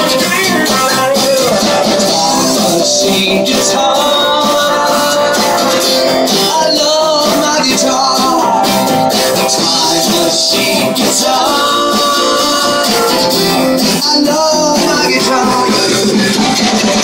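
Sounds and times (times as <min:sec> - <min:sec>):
person singing: 0:00.0 - 0:17.0
strummed acoustic guitar: 0:00.0 - 0:17.0.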